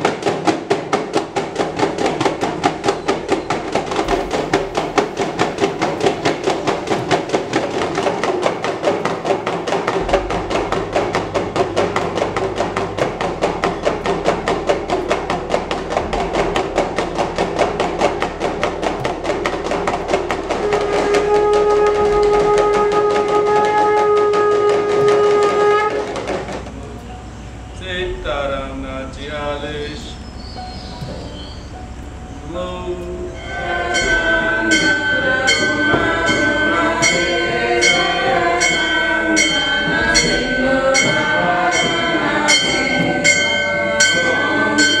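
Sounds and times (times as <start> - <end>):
hand drums beating fast: 0.0 - 26.8
conch shell blown: 20.4 - 26.5.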